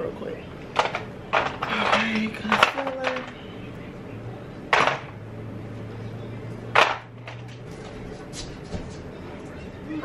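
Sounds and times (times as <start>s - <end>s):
faint low hum: 0.0s - 10.0s
makeup items clattering on table: 0.8s - 3.4s.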